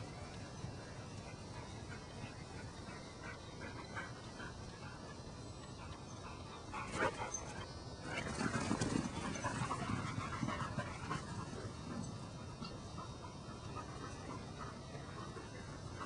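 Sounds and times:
dog panting: 0.8 - 7.8, 8.4 - 16.0.

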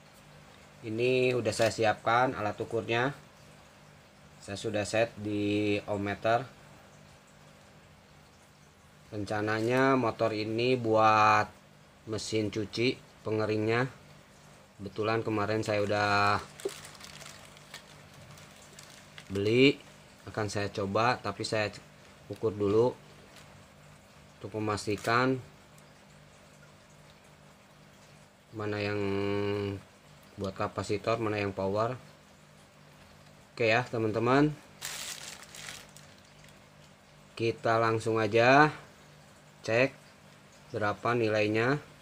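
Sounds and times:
wires and plastic rustling: 0.5 - 2.1, 9.4 - 10.0, 15.2 - 25.9, 34.6 - 37.0
hands rustling wires: 15.7 - 19.6, 34.8 - 36.6.

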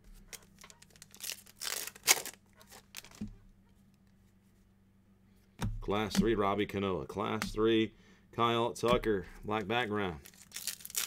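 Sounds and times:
wrapper tearing and crinkling: 0.3 - 3.2, 10.2 - 11.0.

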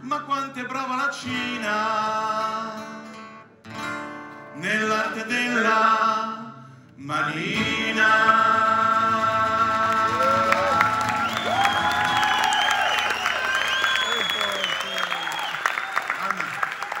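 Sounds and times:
audience applause: 8.8 - 17.0
audience cheering: 9.5 - 17.0.

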